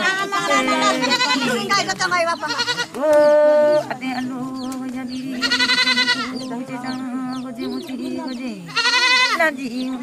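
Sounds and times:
crowd: 0:00.0 - 0:08.7
high drawn-out vocal calls: 0:00.0 - 0:10.0.

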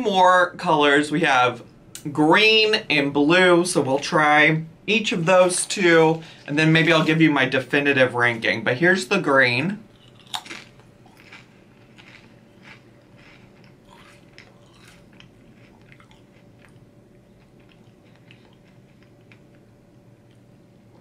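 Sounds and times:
chewing with faint crunches: 0:09.9 - 0:21.0
crunchy bite into chip: 0:10.0 - 0:19.6.

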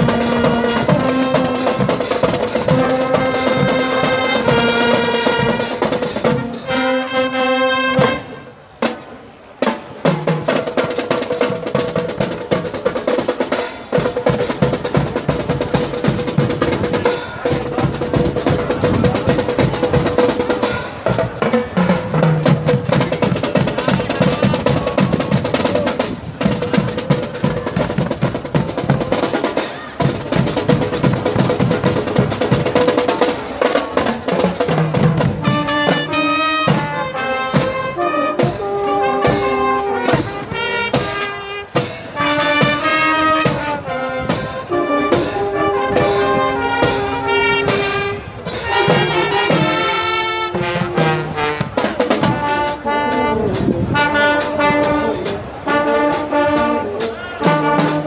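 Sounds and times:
held brass chord: 0:02.7 - 0:08.5, 0:35.4 - 0:58.0
snare and bass drum cadence: 0:08.8 - 0:44.5, 0:45.2 - 0:58.0.

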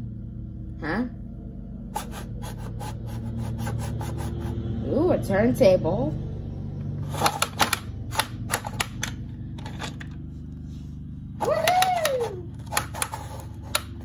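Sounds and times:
plastic toy turntable clicking: 0:11.6 - 0:14.0.

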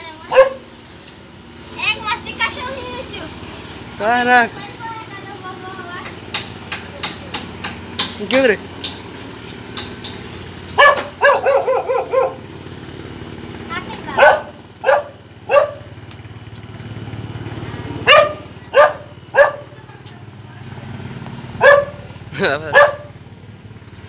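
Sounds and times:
dog barking: 0:00.3 - 0:00.7, 0:10.8 - 0:12.4, 0:14.1 - 0:15.9, 0:18.0 - 0:19.8, 0:21.6 - 0:22.1, 0:22.7 - 0:23.2.

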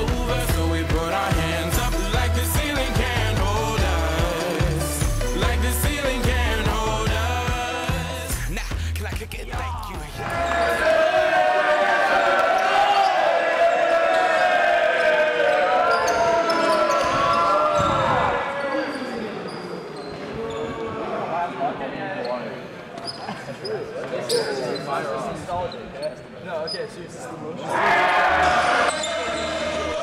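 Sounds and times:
boys shouting and cheering: 0:09.6 - 0:18.6, 0:27.6 - 0:30.0.

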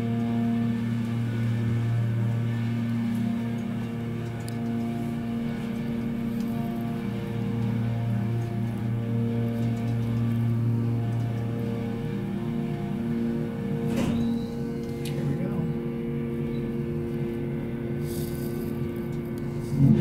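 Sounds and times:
elevator pump motor humming: 0:00.0 - 0:20.0.

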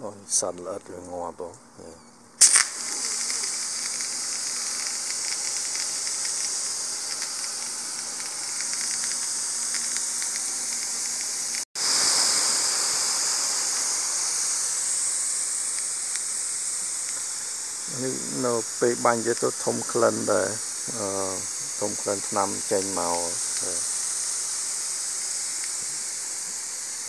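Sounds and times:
hose water spraying on grass: 0:00.1 - 0:27.0.

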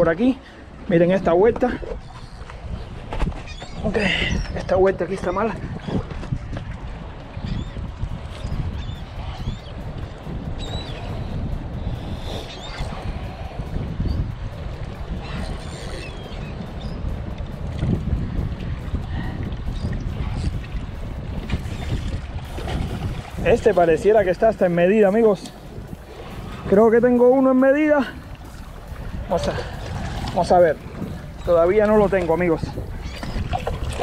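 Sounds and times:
wind rumbling on microphone: 0:00.0 - 0:34.0
high bird calls: 0:03.4 - 0:04.6, 0:07.4 - 0:09.9, 0:10.6 - 0:11.3, 0:11.9 - 0:13.2, 0:15.1 - 0:17.1, 0:31.1 - 0:33.8
waves washing against rocks: 0:21.4 - 0:27.2.

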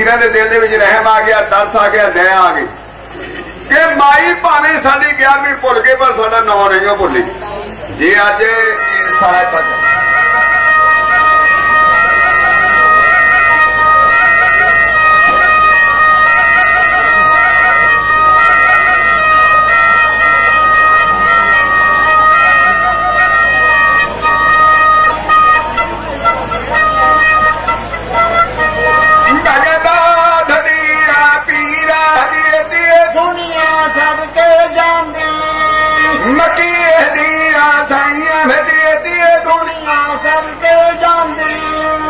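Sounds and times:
end-blown pipe playing: 0:02.4 - 0:42.0.

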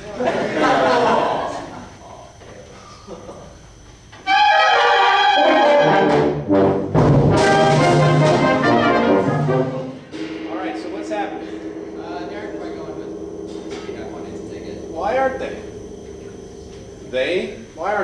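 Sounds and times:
concert band playing brass passage: 0:04.3 - 0:10.5.

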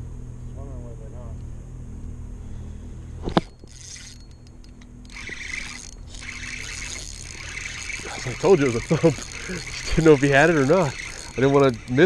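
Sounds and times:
steady low hum: 0:00.0 - 0:12.0
rushing whirring noise: 0:01.8 - 0:12.0
fishing reel cranking: 0:03.3 - 0:12.0.

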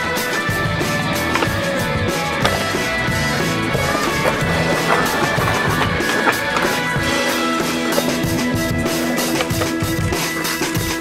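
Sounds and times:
skateboard clacks: 0:00.0 - 0:11.0
skateboard rolling on concrete: 0:00.0 - 0:11.0.

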